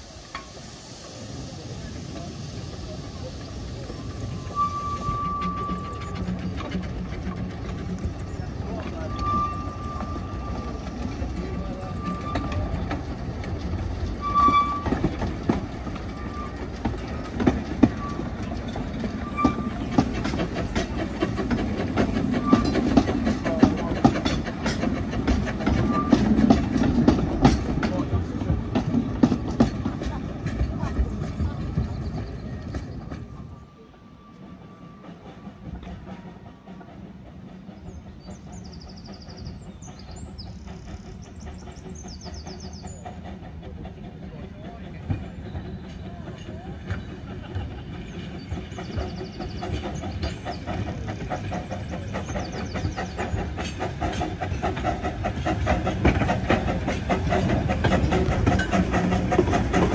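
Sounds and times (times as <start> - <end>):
steam train passing: 0.0 - 59.9
wheels and couplings clanking: 4.3 - 33.5, 41.0 - 59.9.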